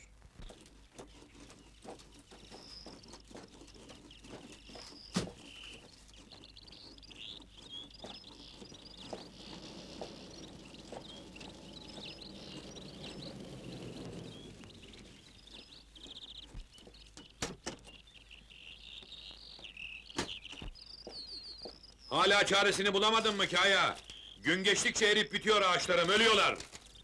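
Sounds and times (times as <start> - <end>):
small birds chirping: 0.0 - 27.0
low rumble: 8.7 - 15.8.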